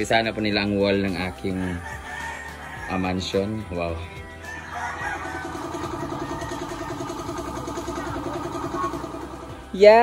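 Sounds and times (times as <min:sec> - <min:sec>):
small motor humming: 0:05.2 - 0:10.0.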